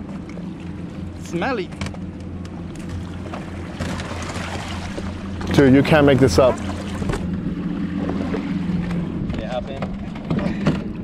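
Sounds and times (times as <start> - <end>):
outboard motor idling: 0.0 - 11.0.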